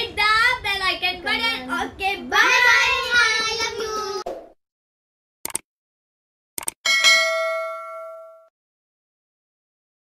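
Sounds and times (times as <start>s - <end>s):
bell ding sound effect: 6.9s - 8.5s.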